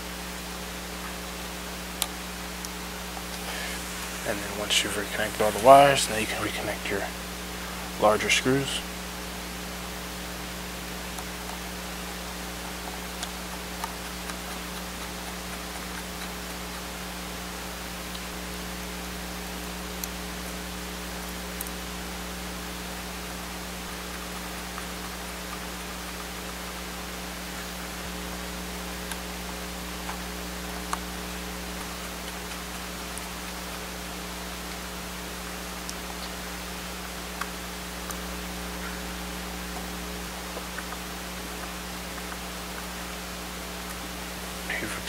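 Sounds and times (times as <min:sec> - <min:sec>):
electrical hum: 0:00.0 - 0:45.0
steady hiss: 0:00.0 - 0:45.0.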